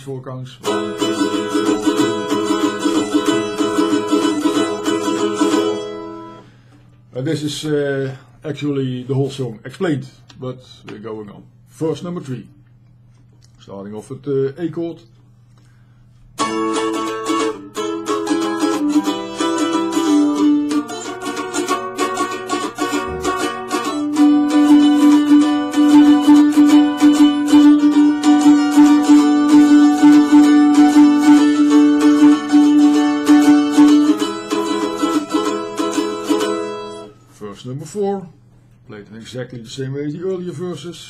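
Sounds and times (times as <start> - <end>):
mandolin strummed chords: 0.6 - 6.6, 16.4 - 37.3.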